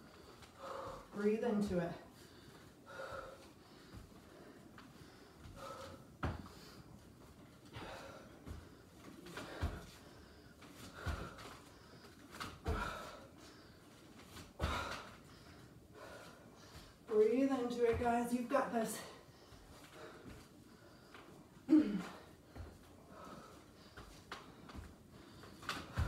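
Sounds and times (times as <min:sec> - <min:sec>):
woman breathing hard: 0:00.0 - 0:01.2, 0:02.0 - 0:17.1, 0:19.0 - 0:26.0
feet thudding on exercise mat: 0:02.9 - 0:13.3, 0:14.2 - 0:15.2, 0:16.0 - 0:18.3, 0:22.0 - 0:26.0.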